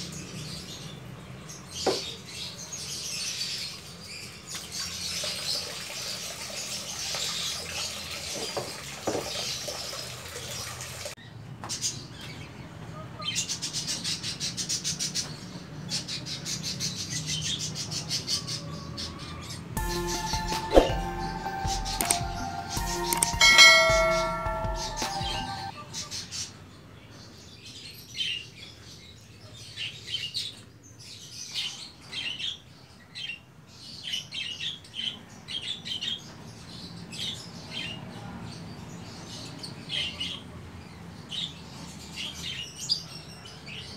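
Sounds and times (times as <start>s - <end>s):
bell-like chime: 19.8s - 25.8s.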